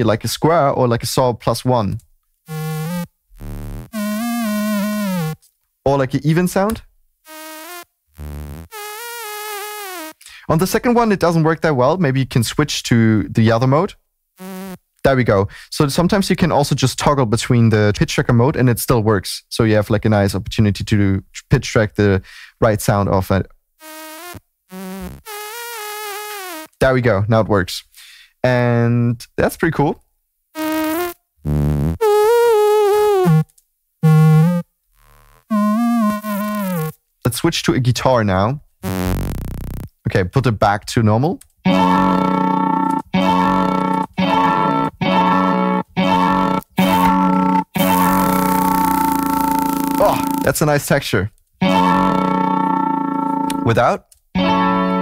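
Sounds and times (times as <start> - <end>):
synthetic saw-like vocal tone: 41.7 - 50.5, 51.6 - 53.7.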